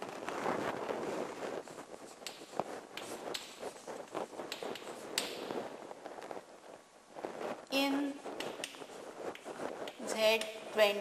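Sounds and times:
chalk tapping on blackboard: 2.1 - 3.8, 4.5 - 5.4.

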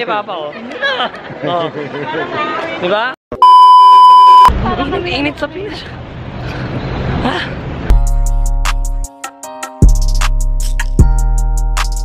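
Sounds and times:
crowd chatter: 0.4 - 3.1
high-pitched bleep tone: 3.4 - 4.5.

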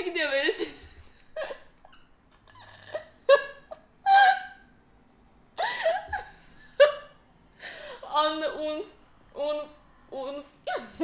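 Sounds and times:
woman laughing: 0.5 - 4.6, 5.6 - 7.2, 10.7 - 11.0.

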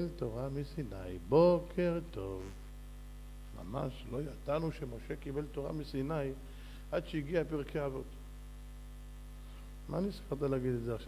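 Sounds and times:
man speaking: 0.0 - 2.6, 3.6 - 8.2, 9.9 - 11.0
electrical mains hum: 0.0 - 11.0.

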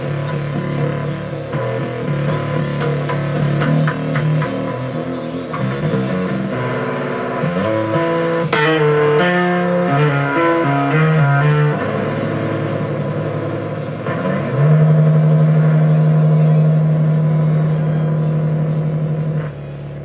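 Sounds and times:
electric bass guitar riff: 0.0 - 20.0
rock music: 0.0 - 20.0.

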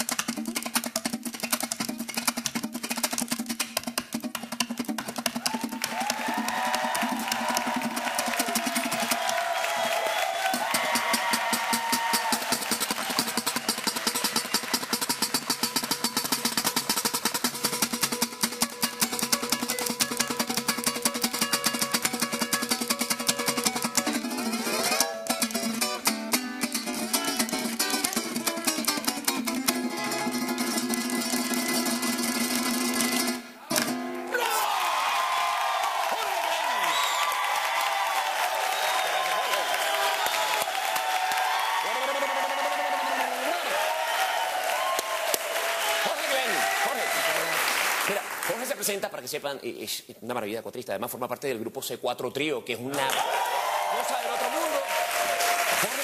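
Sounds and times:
cuatro strumming: 0.0 - 9.4, 10.5 - 34.4.

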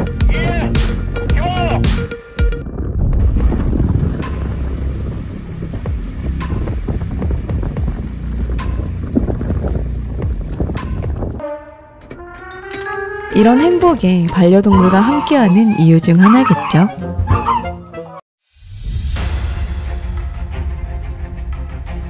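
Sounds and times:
rock blast rumble: 2.0 - 11.4
background music with beat: 4.0 - 11.4.

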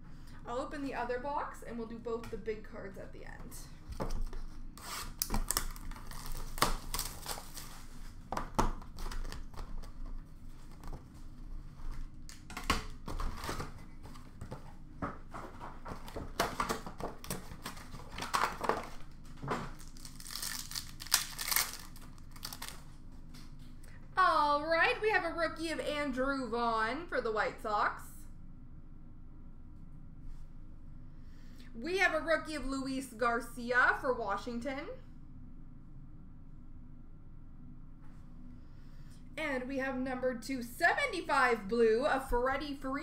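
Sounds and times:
plastic wrapping crinkling: 4.2 - 14.7, 15.5 - 23.0.

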